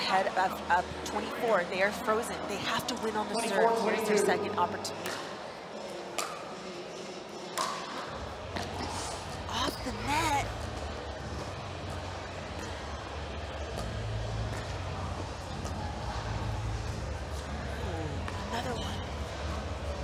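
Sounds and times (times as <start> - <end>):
background chatter: 0.0 - 20.0.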